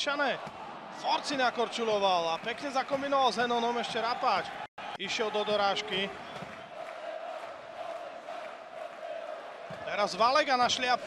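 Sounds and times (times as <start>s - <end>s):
crowd chanting: 5.7s - 10.2s.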